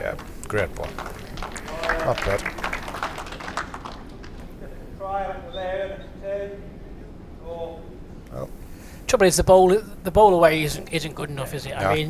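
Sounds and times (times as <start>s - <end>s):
indoor hall background: 0.0s - 12.0s.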